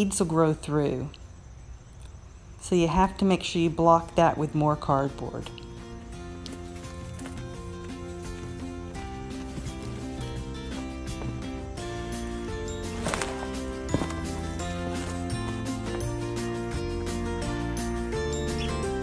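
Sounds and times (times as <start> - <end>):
instrumental background music: 4.9 - 19.0.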